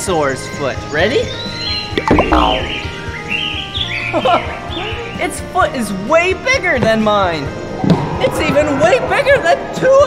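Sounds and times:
light background music: 0.0 - 10.0
birds chirping: 1.2 - 5.2.

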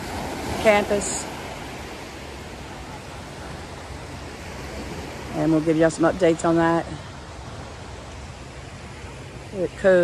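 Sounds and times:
ocean surf: 0.0 - 10.0.

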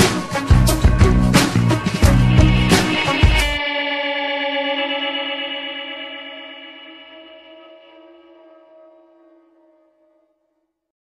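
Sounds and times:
rock band music: 0.0 - 3.8
electric guitar chord ringing: 1.8 - 10.0.

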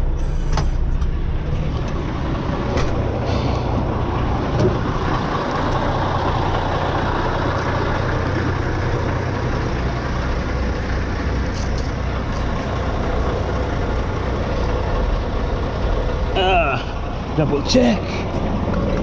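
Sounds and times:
diesel truck engine idling: 0.0 - 19.0.

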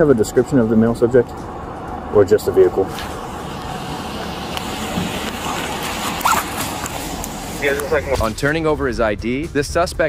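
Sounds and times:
microphone hiss and rumble: 0.0 - 10.0.

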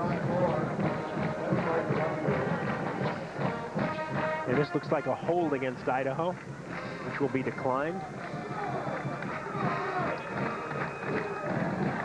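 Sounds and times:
band music: 0.0 - 12.0
stadium crowd voices: 0.0 - 12.0.

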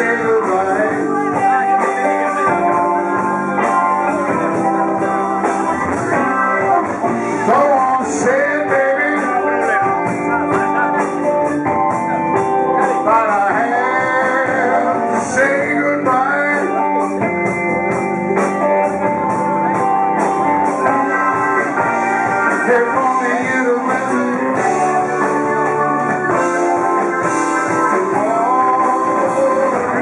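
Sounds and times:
blues band playing: 0.0 - 30.0
electric guitar lead lines: 0.0 - 30.0.

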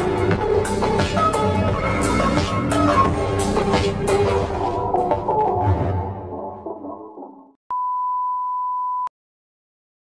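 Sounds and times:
background music: 0.0 - 7.6
steady electronic beep: 7.7 - 9.1.

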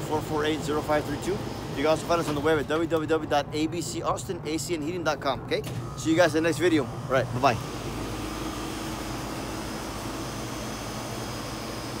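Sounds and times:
compressor and fan hum: 0.0 - 12.0.

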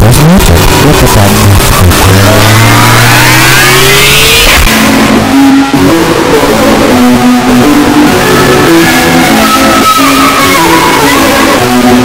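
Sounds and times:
rising whine: 0.0 - 12.0.

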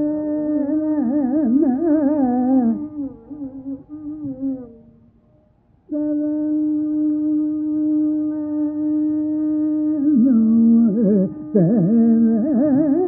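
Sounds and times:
carnatic classical music: 0.0 - 13.0.

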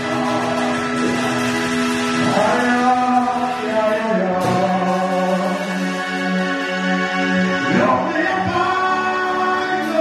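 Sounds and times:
group singing gospel: 0.0 - 10.0.

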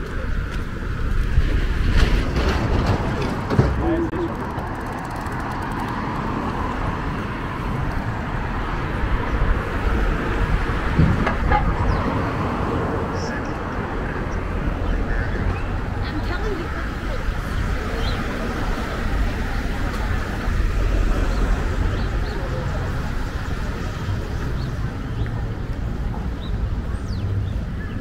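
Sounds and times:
passersby talking indistinctly: 0.0 - 28.0
steady street traffic: 0.0 - 28.0.

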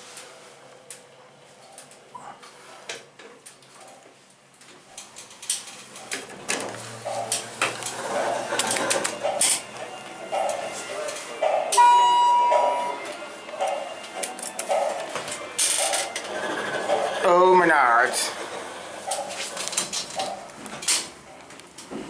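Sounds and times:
store background voices or music: 8.0 - 18.5
electronic elevator beep: 11.8 - 13.1.

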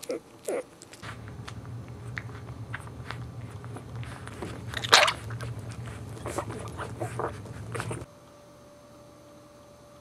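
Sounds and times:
puppies suckling: 0.0 - 8.1
puppies squeaking and whimpering: 1.9 - 8.1.

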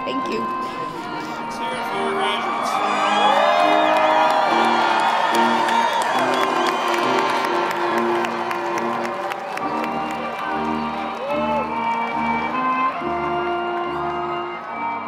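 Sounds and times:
background music: 0.0 - 15.0
crowd cheering and whooping: 1.4 - 15.0.

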